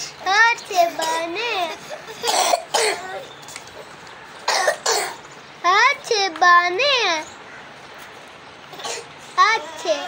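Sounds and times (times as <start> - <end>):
child's high-pitched voice: 0.0 - 2.0, 5.6 - 7.3, 9.4 - 10.0
person coughing: 2.2 - 3.1.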